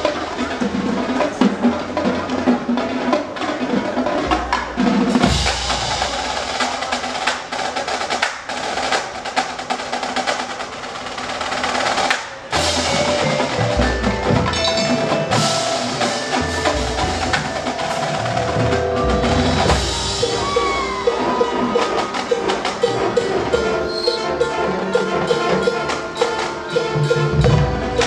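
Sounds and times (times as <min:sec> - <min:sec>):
mallet percussion: 0:00.0 - 0:07.8, 0:12.5 - 0:28.0
snare drum rolls: 0:00.0 - 0:28.0.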